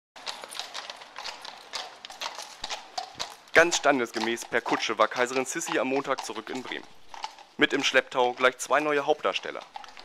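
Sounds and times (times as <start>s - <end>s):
hooves clip-clopping on cobblestones: 0.2s - 10.0s.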